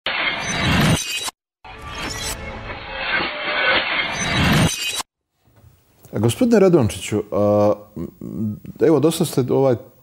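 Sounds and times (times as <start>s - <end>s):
glass shattering effect: 0.1s - 5.1s.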